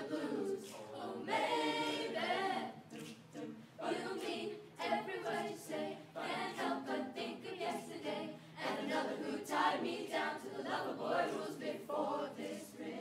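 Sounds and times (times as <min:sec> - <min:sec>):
choir singing a cappella: 0:00.0 - 0:13.0.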